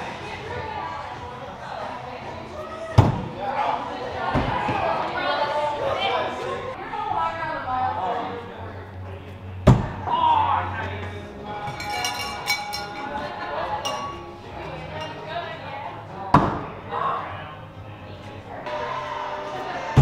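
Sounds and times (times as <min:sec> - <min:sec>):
background music: 0:00.0 - 0:20.0
voices: 0:00.0 - 0:20.0.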